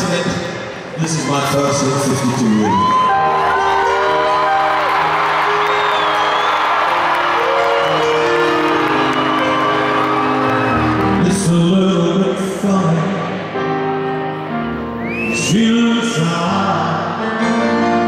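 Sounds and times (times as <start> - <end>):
crowd cheering and whistling: 0.9 - 12.1, 13.6 - 16.3
grand piano playing slow song: 2.6 - 18.0.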